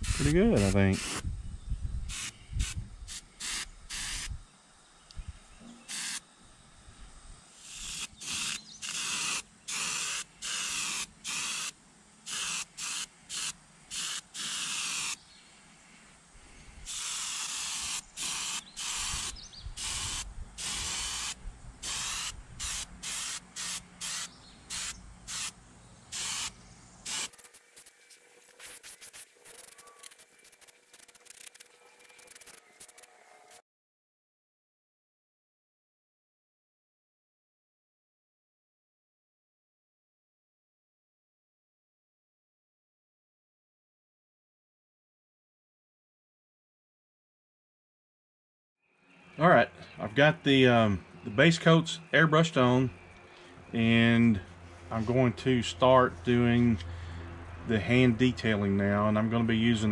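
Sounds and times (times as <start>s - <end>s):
airbrush hissing: 0.0s - 1.2s, 2.0s - 4.4s, 5.8s - 6.2s, 7.5s - 15.2s, 16.8s - 33.0s.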